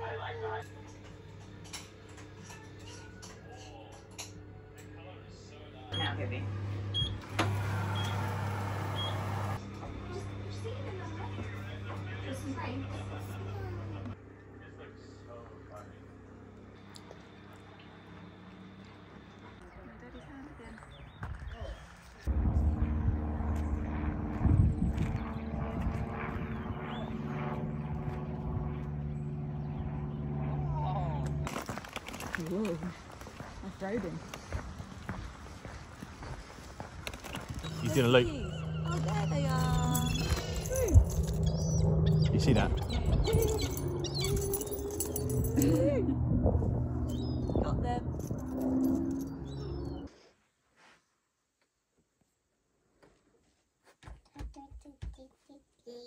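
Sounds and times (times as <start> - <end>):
propeller plane engine droning: 0.0 - 50.1.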